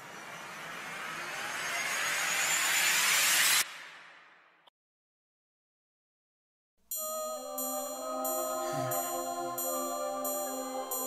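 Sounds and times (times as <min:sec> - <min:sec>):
rushing whoosh riser: 0:00.0 - 0:04.6.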